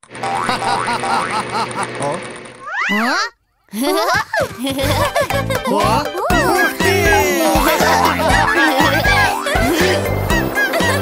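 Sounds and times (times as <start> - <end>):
cartoon voice calling: 2.6 - 3.4.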